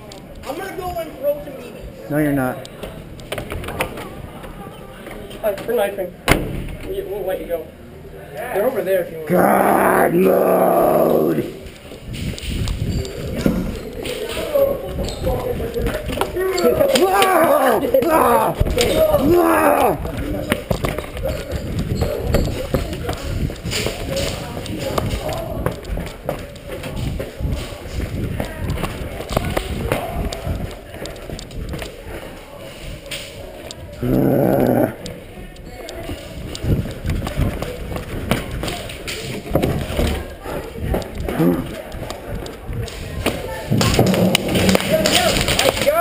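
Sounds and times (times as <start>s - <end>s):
indistinct voices: 7.7s - 46.0s.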